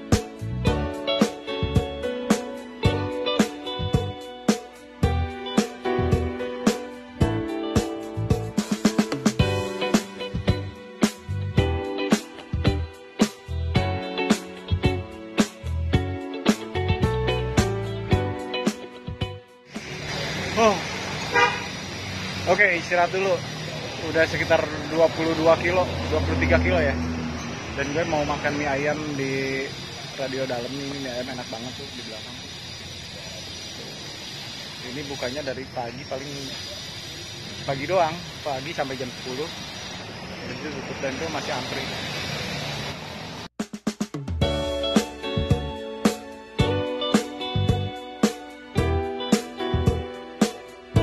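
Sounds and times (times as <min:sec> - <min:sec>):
background guitar music: 0:00.0 - 0:27.2, 0:44.2 - 0:51.0
traffic engine hum: 0:19.7 - 0:43.5
vehicle horn toot: 0:21.2 - 0:21.8.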